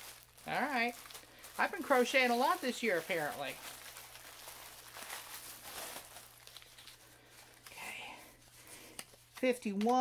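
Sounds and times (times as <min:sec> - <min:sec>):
paper and plastic bag rustling: 0:00.0 - 0:09.8.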